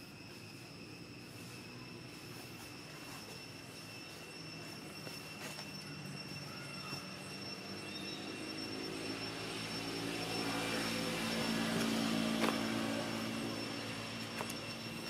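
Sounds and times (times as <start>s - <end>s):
engine passing by: 7.0s - 15.0s.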